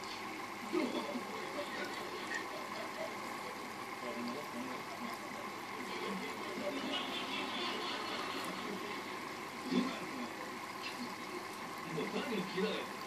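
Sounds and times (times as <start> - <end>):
aquarium filter bubbling water: 0.0 - 13.0.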